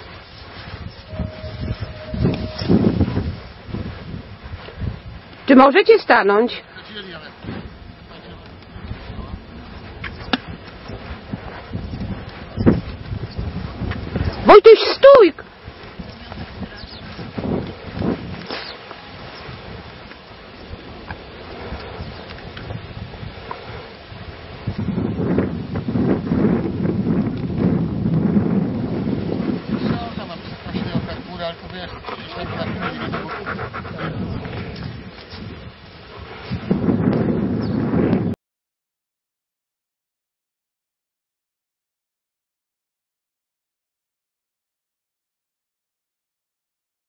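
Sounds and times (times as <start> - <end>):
wind buffeting microphone: 0.0 - 38.4
dog panting rapidly: 30.9 - 35.0.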